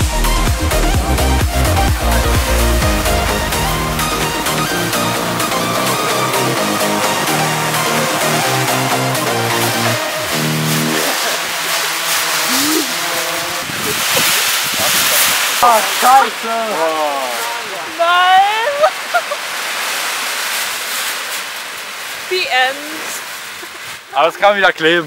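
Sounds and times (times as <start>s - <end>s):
music: 0.0s - 11.3s
foil rustling and crinkling: 3.0s - 25.0s.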